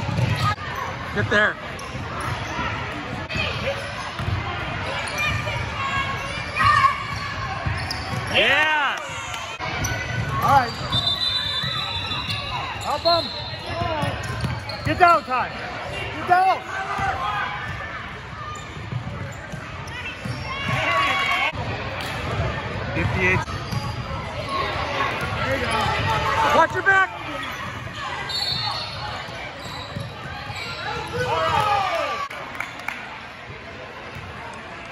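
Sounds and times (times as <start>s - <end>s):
voices in large hall: 0.0s - 34.9s.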